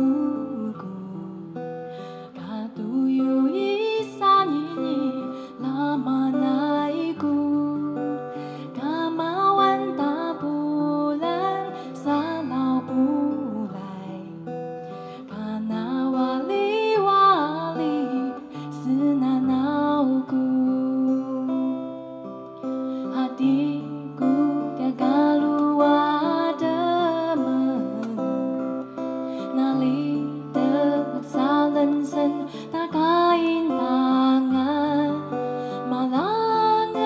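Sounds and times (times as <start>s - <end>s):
acoustic guitar: 0.0s - 37.0s
woman singing slow melody: 0.0s - 37.0s.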